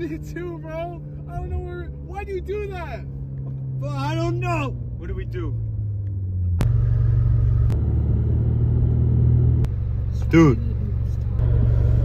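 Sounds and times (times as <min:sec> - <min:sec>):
car engine droning: 0:00.0 - 0:12.0.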